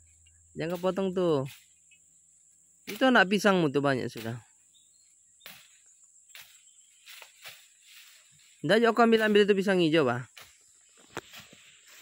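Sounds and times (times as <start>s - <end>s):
high insect-like hum: 0.0s - 12.0s
machete slashing through grass: 2.9s - 3.3s, 5.4s - 8.3s, 10.3s - 12.0s.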